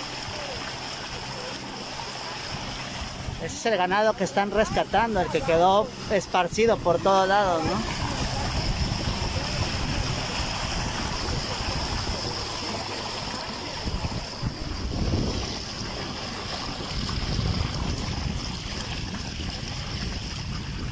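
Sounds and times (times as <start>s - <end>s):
boat motor: 0.0s - 20.9s
water noise: 0.0s - 20.9s
wind on microphone: 2.3s - 3.6s, 4.6s - 20.9s.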